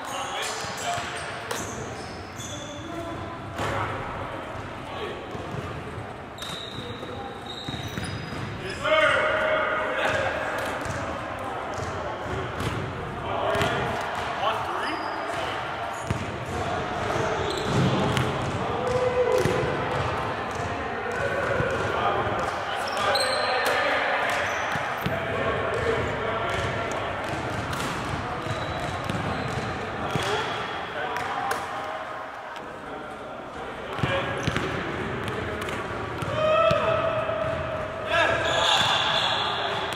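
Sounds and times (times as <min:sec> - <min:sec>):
basketballs bouncing on hardwood floor: 0:16.1 - 0:16.3, 0:25.8 - 0:30.4, 0:34.0 - 0:35.4.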